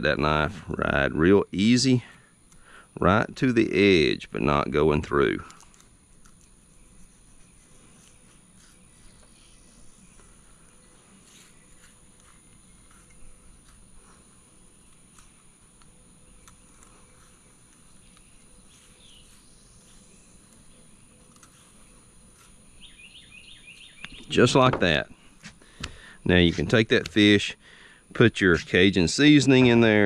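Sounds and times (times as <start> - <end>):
small chirps: 5.4 - 24.4.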